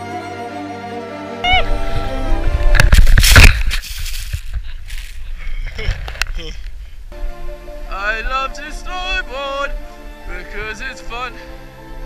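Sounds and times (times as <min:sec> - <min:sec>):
wind rushing against camera: 0:01.5 - 0:12.0
knocks and scrapes: 0:02.6 - 0:06.5.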